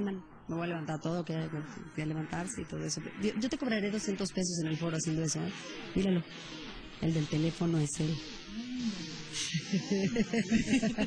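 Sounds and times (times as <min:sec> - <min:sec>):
women laughing: 0:09.4 - 0:11.0.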